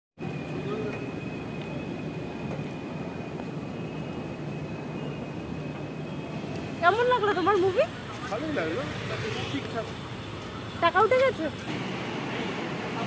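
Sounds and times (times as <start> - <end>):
high-pitched whine: 0.2 - 9.7
busy public space din: 0.2 - 13.0.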